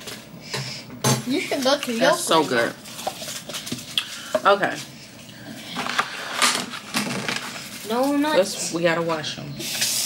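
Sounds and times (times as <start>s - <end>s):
items clattering on kitchen counter: 5.7s - 8.2s.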